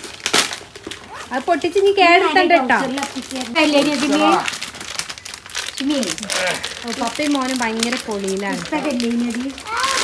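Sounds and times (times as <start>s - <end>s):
plastic wrapping crinkling: 0.0s - 10.0s
high-pitched talk: 1.1s - 4.5s, 6.8s - 10.0s.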